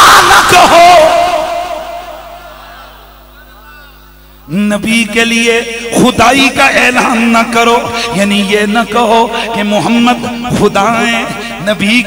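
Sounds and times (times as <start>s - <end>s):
faint sound system hum: 0.0s - 12.0s
man's amplified voice holding a note: 0.0s - 12.0s.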